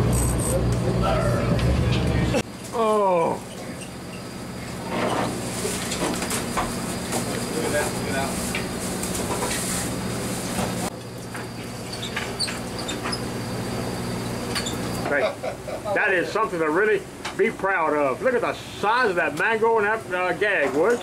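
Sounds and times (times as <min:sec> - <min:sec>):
boat motor humming: 0:00.0 - 0:15.9
people talking: 0:00.7 - 0:03.4, 0:07.5 - 0:08.4, 0:15.0 - 0:21.0.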